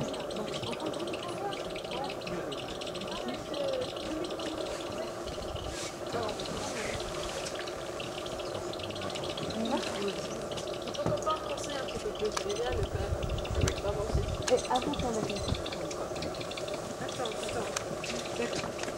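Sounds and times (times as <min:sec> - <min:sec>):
chatter of voices: 0:00.0 - 0:18.9.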